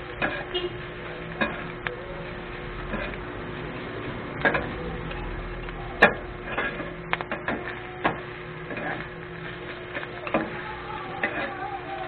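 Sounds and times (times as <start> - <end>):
metal spatulas scraping on griddle: 0.0 - 11.7.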